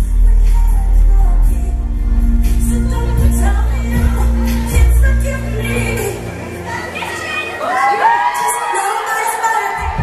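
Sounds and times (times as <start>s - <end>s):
woman singing pop vocal: 0.0s - 10.0s
audience screaming: 6.6s - 10.0s.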